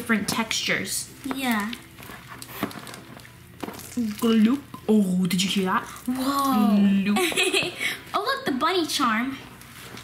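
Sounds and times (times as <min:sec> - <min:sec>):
faint background music: 0:00.0 - 0:10.0
slime squelching: 0:00.5 - 0:06.7.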